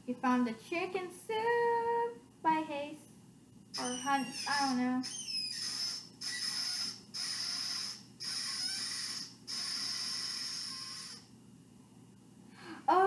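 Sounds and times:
harsh high-pitched squeals: 3.7s - 11.3s.

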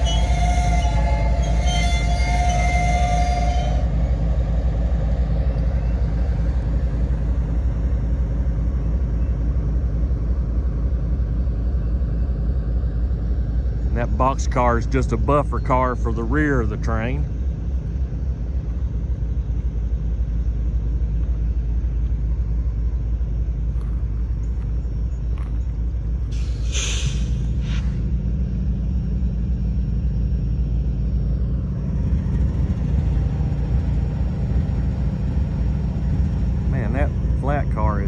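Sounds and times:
freight train rumbling past: 0.0s - 38.0s
brief hiss: 26.3s - 28.1s.

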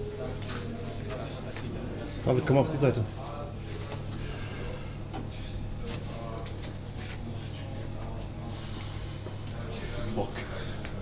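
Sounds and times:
indistinct background voices: 0.0s - 11.0s
steady low hum: 0.0s - 11.0s.

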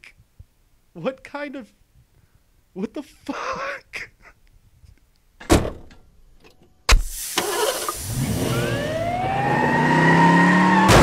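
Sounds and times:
vehicle engine revving: 7.4s - 11.0s
crash: 10.8s - 11.0s.

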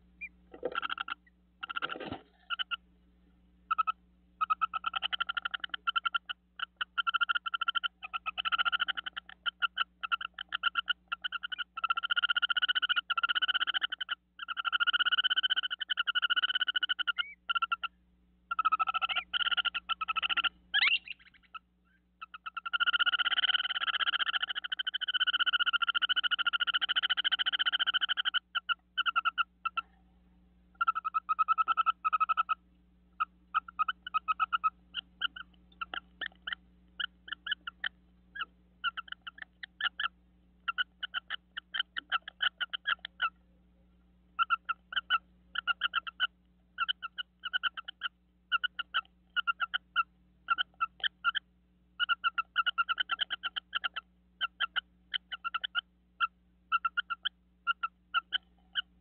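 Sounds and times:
animal fast pulsed trills: 3.7s - 30.0s, 30.7s - 32.6s, 33.2s - 43.4s.

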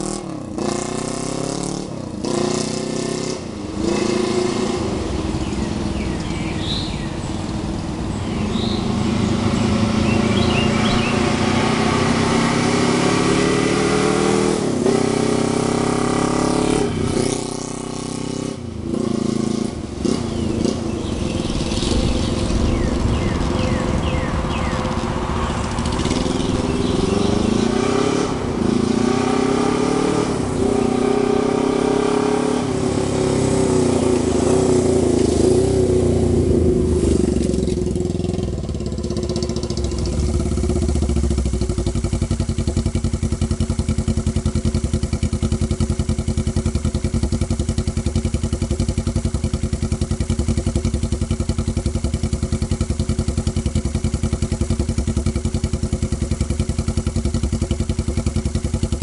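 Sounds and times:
motorcycle engine revving and idling: 0.0s - 59.0s.

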